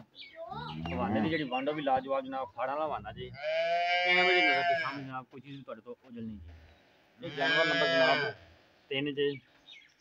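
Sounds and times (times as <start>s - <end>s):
calf bawling: 7.2s - 8.4s.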